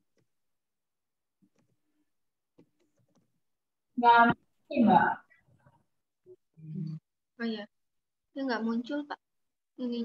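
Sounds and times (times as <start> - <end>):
person speaking over video call: 4.0 - 5.6.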